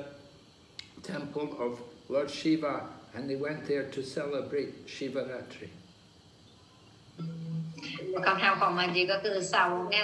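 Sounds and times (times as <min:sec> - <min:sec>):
man's hesitation hum: 0:07.1 - 0:08.2.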